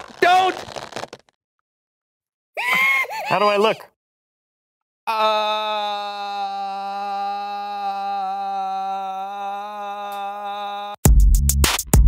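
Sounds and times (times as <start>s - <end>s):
man screaming in fright: 5.1s - 11.0s.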